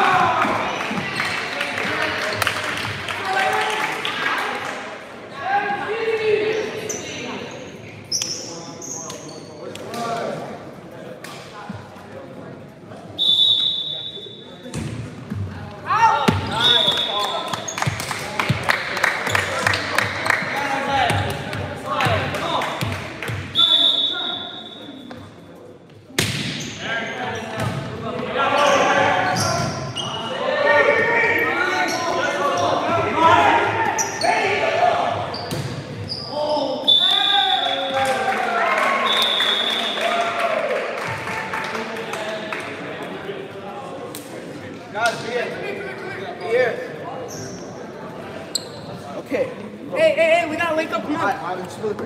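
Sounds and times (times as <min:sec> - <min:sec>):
players and spectators shouting: 0:00.0 - 0:01.0, 0:28.3 - 0:35.4
referee whistle blasts: 0:13.2 - 0:14.4, 0:16.5 - 0:17.4, 0:23.5 - 0:24.9, 0:36.8 - 0:38.0, 0:39.0 - 0:40.0.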